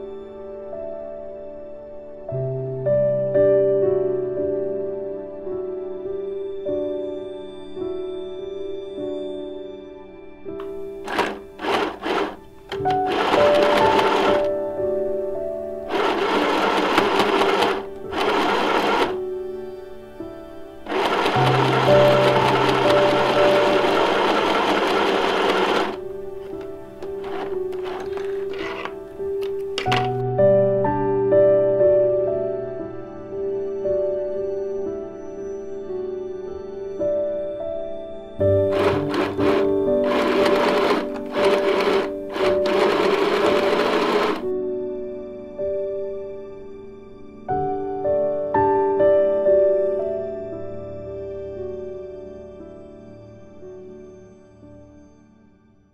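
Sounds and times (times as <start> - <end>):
background music: 0.0 - 55.9
sewing machine stitching: 10.6 - 14.6, 15.9 - 19.2, 20.9 - 30.2, 38.6 - 44.5.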